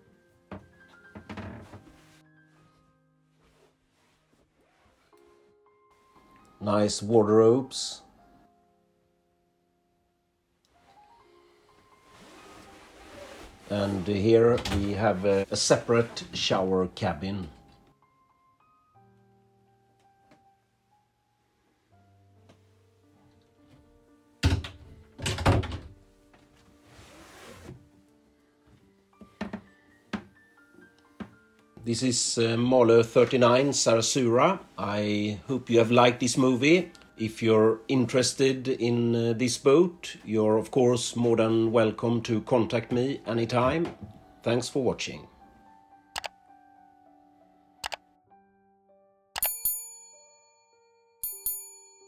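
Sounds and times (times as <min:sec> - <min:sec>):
soft background music: 0:00.0 - 0:52.0
wooden door thudding shut: 0:24.4 - 0:26.0
notification bell dings: 0:49.4 - 0:52.0.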